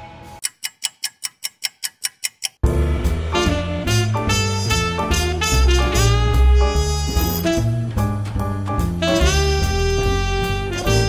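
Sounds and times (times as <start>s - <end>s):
rapid clock-like ticking: 0.4s - 2.6s
intro music: 2.6s - 11.0s.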